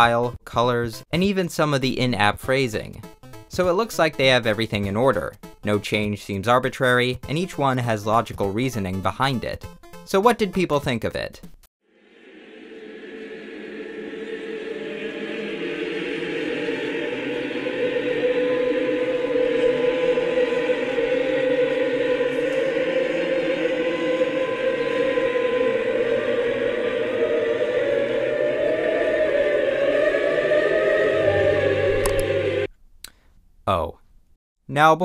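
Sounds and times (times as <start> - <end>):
choir holding sustained notes: 11.8 - 32.7.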